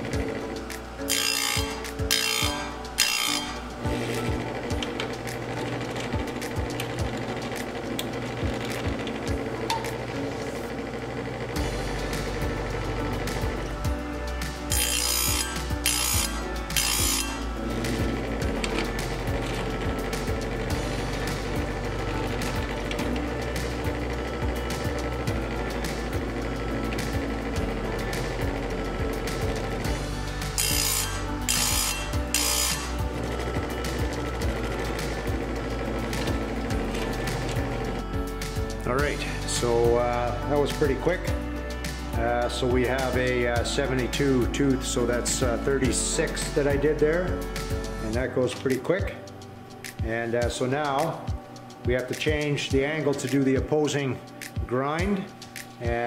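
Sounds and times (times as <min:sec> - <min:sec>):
background music: 0:00.0 - 0:56.0
grinding stone on saw chain: 0:14.7 - 0:18.4, 0:30.5 - 0:33.4.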